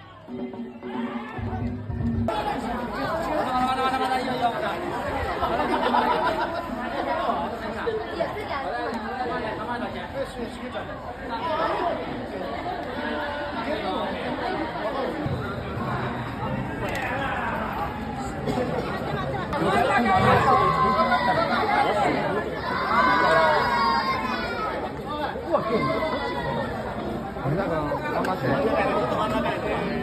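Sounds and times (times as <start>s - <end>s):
crowd talking and calling out: 0.0s - 30.0s.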